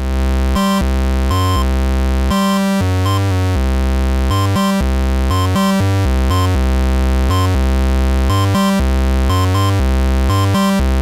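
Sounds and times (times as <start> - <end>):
synthesizer bassline: 0.0 - 11.0.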